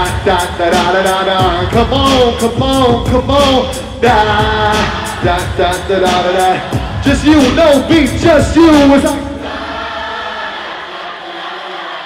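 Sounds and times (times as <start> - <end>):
crowd singing together: 0.0 - 12.0.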